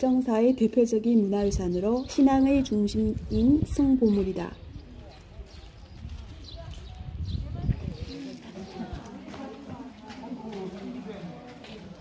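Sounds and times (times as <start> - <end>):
distant people talking: 1.8 - 12.0.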